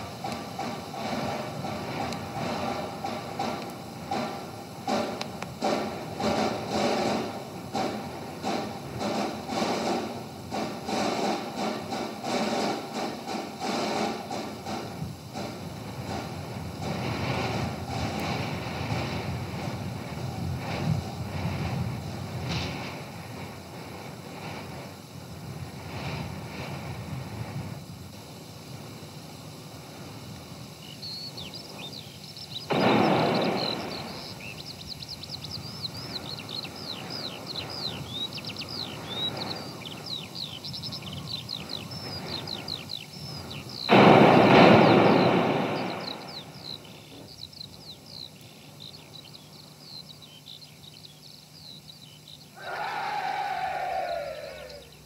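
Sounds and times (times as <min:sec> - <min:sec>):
loud burst: 0:00.0 - 0:23.4, 0:32.6 - 0:40.4, 0:41.0 - 0:48.4
hooves and wheels clattering: 0:00.0 - 0:52.8
rolling rumble: 0:00.0 - 0:55.0
birds chirping: 0:29.5 - 0:55.0.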